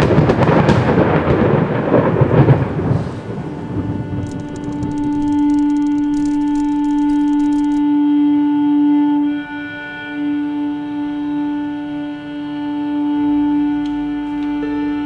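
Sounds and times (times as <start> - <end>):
deep rumble: 3.1 - 7.8
low sustained music note: 3.6 - 15.0.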